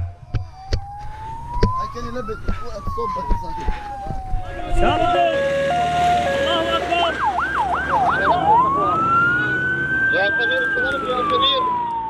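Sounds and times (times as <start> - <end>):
emergency vehicle siren: 0.0 - 12.0.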